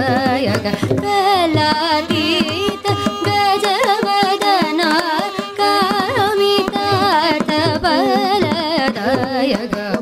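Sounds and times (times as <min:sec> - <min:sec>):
mridangam strokes: 0:00.0 - 0:10.0
woman singing: 0:00.0 - 0:10.0.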